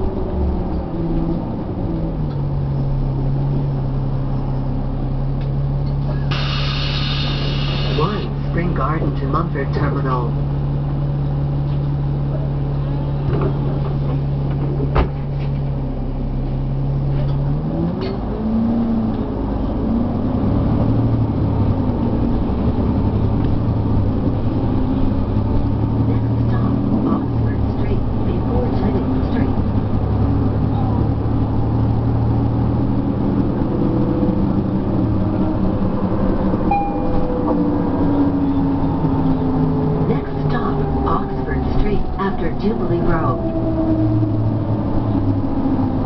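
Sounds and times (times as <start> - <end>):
bus engine droning: 0.0 - 46.0
rising whines: 29.0 - 46.0.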